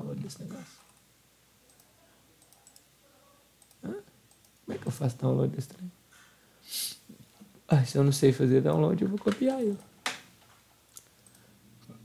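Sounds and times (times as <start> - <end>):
person speaking: 0.0 - 0.9, 3.0 - 6.0, 6.7 - 9.9
computer mouse clicks: 1.7 - 2.9, 3.6 - 4.7, 10.9 - 11.4.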